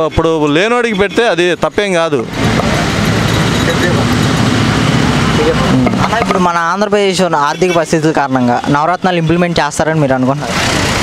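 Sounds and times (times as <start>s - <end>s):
man speaking: 0.0s - 2.3s, 5.3s - 10.5s
motor vehicle noise: 0.0s - 11.0s.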